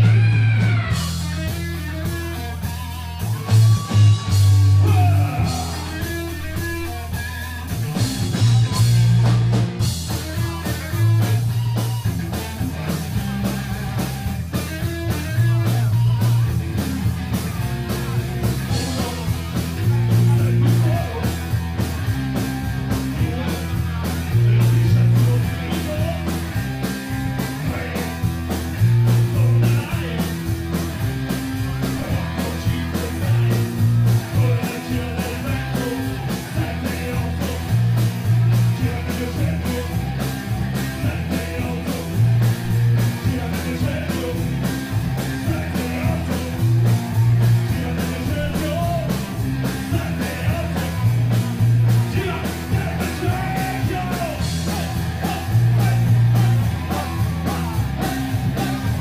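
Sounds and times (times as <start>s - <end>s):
rock band playing: 0.0s - 59.0s
lead vocal singing: 2.8s - 9.5s, 17.8s - 21.7s, 22.5s - 59.0s.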